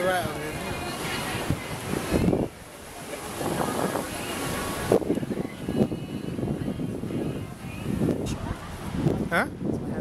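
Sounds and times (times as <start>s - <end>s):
ocean surf breaking: 0.0s - 9.4s
wind buffeting microphone: 0.0s - 10.0s.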